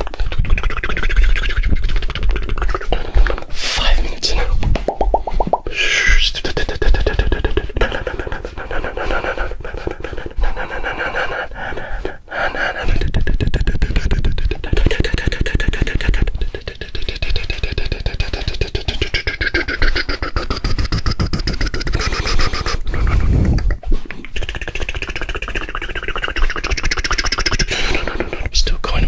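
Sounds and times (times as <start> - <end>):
mouth clicks and lip smacks: 0.0 - 29.0
air gusts on microphone: 21.9 - 24.0.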